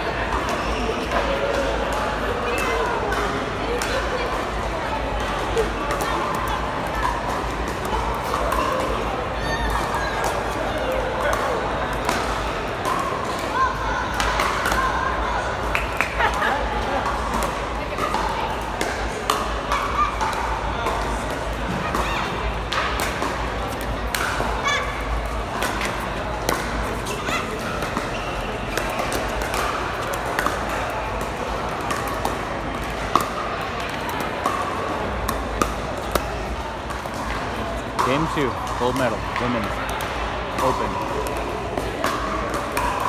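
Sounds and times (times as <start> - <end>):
murmur of crowd chatter: 0.0 - 43.0
ball bouncing on court: 17.0 - 43.0.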